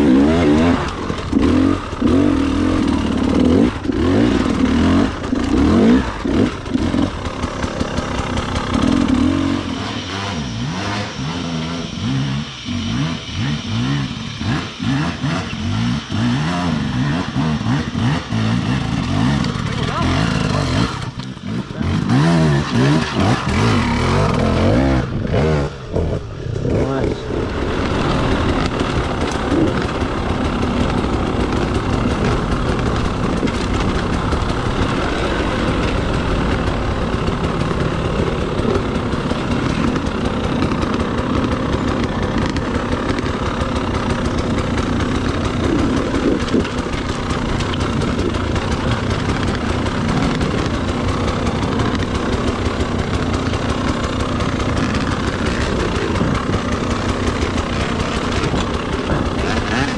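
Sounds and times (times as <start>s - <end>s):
dirt bike engine running: 0.0s - 59.9s.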